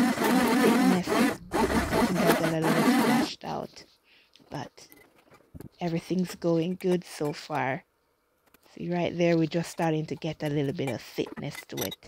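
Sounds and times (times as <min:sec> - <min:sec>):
immersion blender running: 0:00.0 - 0:03.3.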